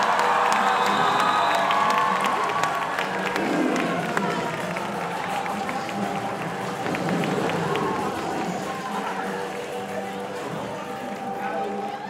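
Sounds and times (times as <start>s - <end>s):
audience voices: 0.0s - 12.0s.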